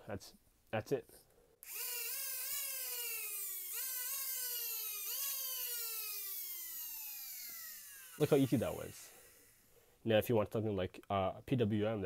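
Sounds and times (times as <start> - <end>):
motors spinning with high whine: 1.6 - 9.7.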